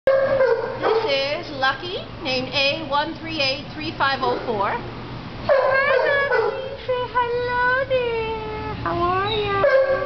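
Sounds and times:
woman's voice: 0.8 - 4.9, 5.7 - 9.7
dog whining and yipping: 9.2 - 10.0.

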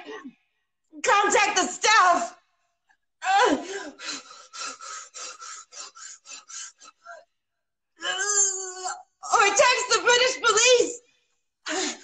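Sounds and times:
woman panting rapidly: 3.4 - 7.2.

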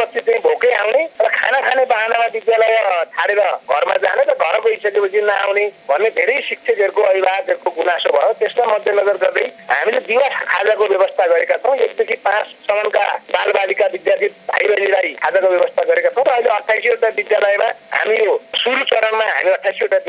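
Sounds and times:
person talking over radio: 0.0 - 20.0.

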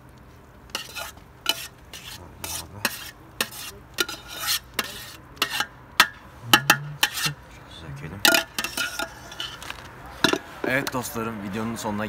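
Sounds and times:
metal spoon scraping pot: 0.7 - 7.4, 8.2 - 11.0.

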